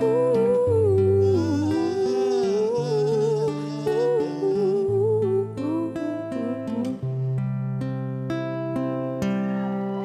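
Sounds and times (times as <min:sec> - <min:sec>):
person humming a melody: 0:00.0 - 0:07.5
acoustic guitar: 0:00.0 - 0:10.0.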